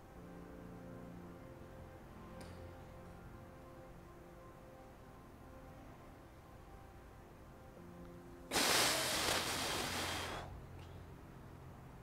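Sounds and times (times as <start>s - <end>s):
man exhaling through mouth: 8.5s - 10.5s.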